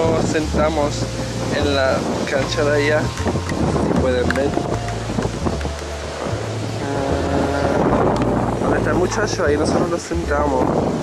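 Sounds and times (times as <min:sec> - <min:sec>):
background music with bass line: 0:00.0 - 0:11.0
wind rushing over microphone: 0:00.0 - 0:11.0.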